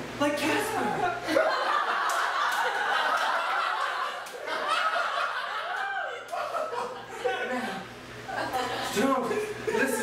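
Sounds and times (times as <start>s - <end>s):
voices and chuckles: 0.8s - 10.0s
audience laughing: 1.1s - 10.0s.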